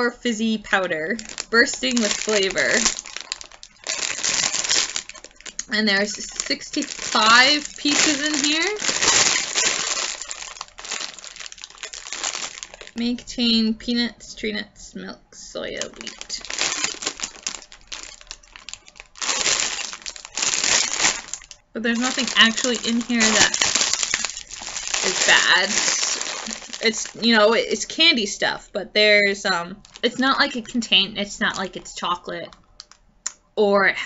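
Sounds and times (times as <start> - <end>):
plastic bag crinkling: 0.0 - 13.3, 15.7 - 28.0, 29.7 - 33.0.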